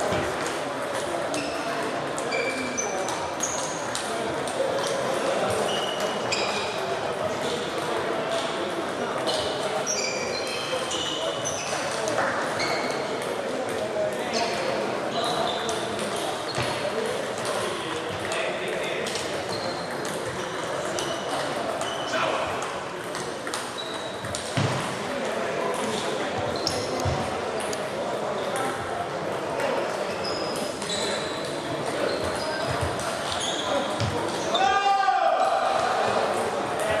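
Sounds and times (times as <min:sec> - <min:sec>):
ball bouncing on floor: 0:16.0 - 0:16.8, 0:24.2 - 0:25.0, 0:26.4 - 0:27.3, 0:32.2 - 0:33.1, 0:34.0 - 0:34.2.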